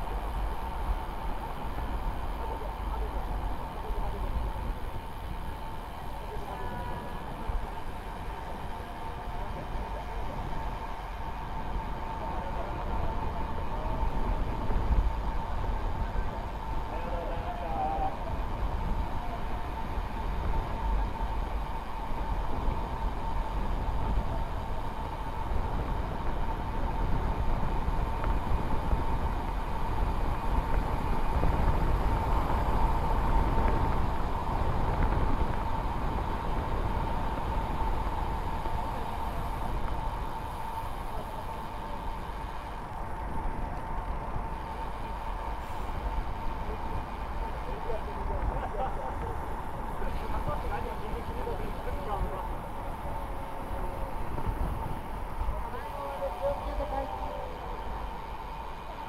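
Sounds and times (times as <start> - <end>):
bike tyres rolling on asphalt: 0.0 - 59.0
thin steady whine: 0.0 - 59.0
wind buffeting microphone: 0.0 - 59.0.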